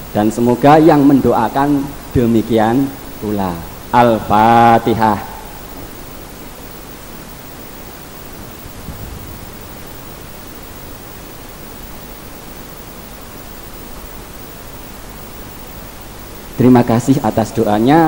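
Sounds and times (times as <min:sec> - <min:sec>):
steady hiss: 0:00.0 - 0:18.0.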